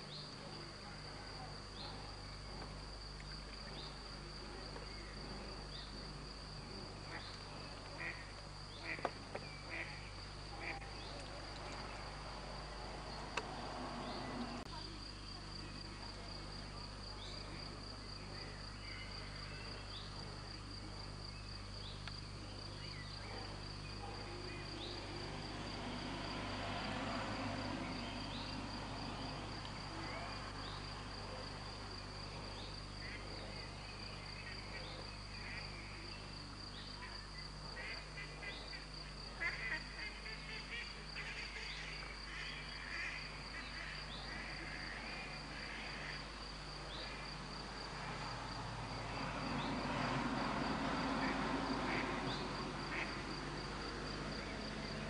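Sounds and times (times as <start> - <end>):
crickets trilling: 0.0 - 55.0.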